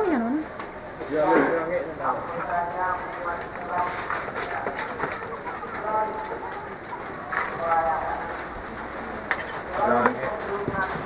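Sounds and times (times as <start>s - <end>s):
people talking: 0.0s - 0.4s, 1.0s - 11.0s
background hum of activity: 0.0s - 11.0s.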